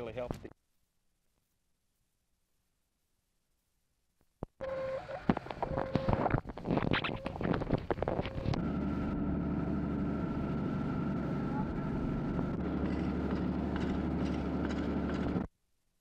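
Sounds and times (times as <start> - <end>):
mechanical hum with held tones: 4.6 - 15.5.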